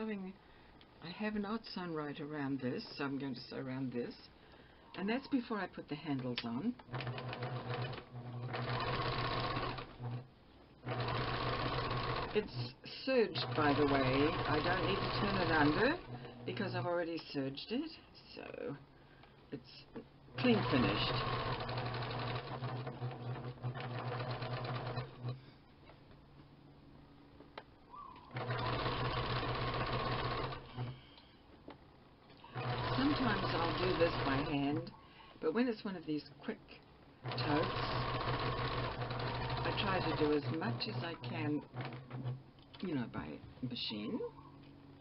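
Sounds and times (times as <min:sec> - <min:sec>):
sewing machine stitching: 0:06.8 - 0:16.7, 0:20.4 - 0:25.4, 0:28.3 - 0:31.0, 0:32.4 - 0:34.9, 0:37.2 - 0:42.4.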